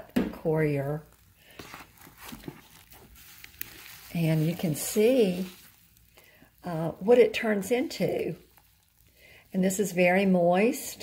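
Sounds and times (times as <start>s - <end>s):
wet coir rustling and crackling: 0.4s - 11.0s.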